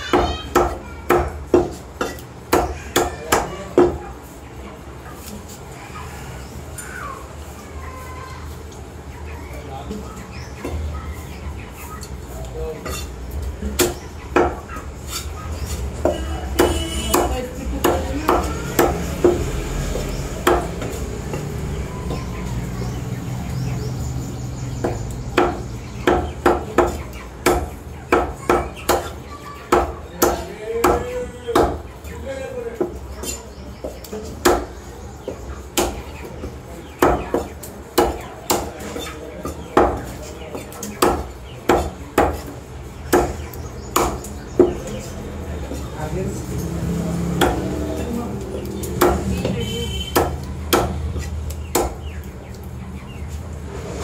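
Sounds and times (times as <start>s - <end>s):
cleaver chopping meat on wood: 0.1s - 4.0s, 12.8s - 22.3s, 24.8s - 31.9s, 32.8s - 45.2s, 46.6s - 52.2s.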